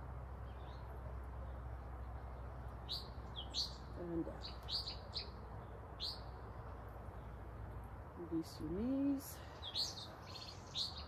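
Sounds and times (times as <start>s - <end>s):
small birds chirping: 0.2s - 11.0s.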